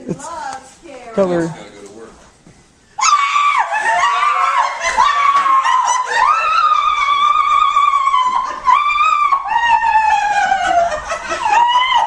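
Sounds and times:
woman screaming in surprise: 3.0s - 12.0s.

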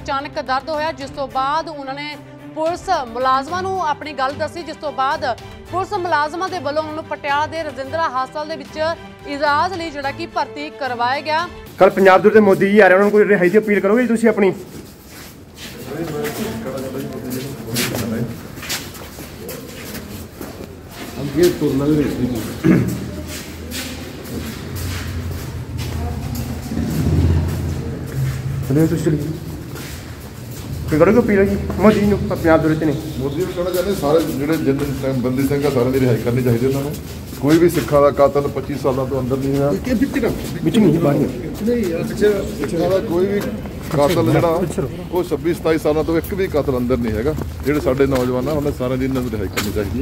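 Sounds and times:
people talking indistinctly: 0.0s - 50.0s
person speaking: 21.0s - 29.9s, 30.7s - 50.0s.

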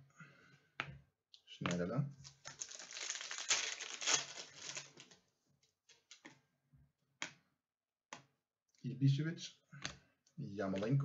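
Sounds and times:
foil wrapper crinkling: 2.2s - 5.2s.

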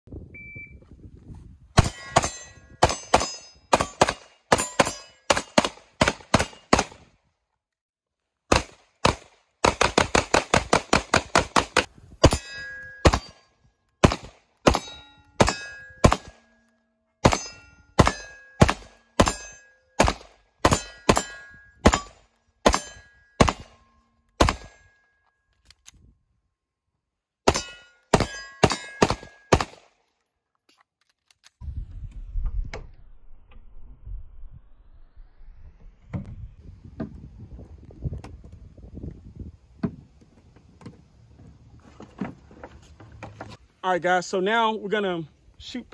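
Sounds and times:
short metallic ring: 1.8s - 3.7s, 12.3s - 13.7s, 14.8s - 20.0s, 27.5s - 29.5s
pistol shots: 1.8s - 7.0s, 8.5s - 13.4s, 14.0s - 16.4s, 17.2s - 23.8s, 24.4s - 24.8s, 27.5s - 30.0s.

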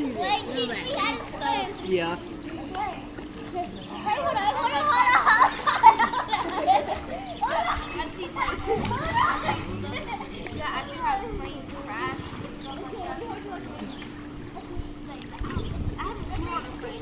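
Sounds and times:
light water splashing: 0.0s - 17.0s
steady low hum: 6.8s - 17.0s.

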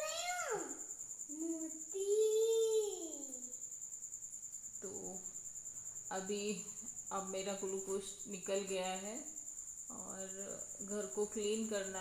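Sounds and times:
insect trill: 0.0s - 12.0s.

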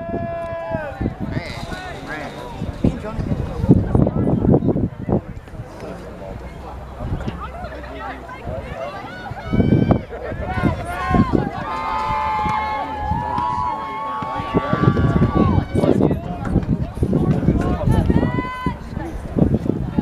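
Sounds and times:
players shouting calls: 0.0s - 4.4s, 5.9s - 19.1s
outdoor ground noise: 0.0s - 20.0s.

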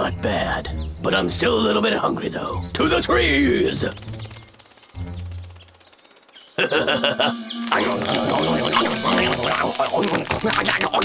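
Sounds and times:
cartoon voice stammering: 6.8s - 9.8s.

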